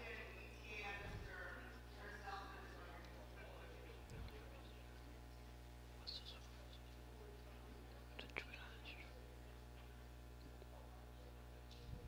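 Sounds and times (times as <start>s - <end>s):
low electrical hum: 0.0s - 12.0s
faint whispering: 5.9s - 10.0s.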